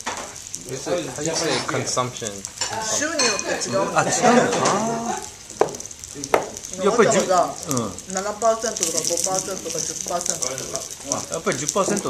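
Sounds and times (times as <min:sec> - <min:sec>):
food sizzling: 0:00.0 - 0:12.0
voices: 0:00.6 - 0:12.0.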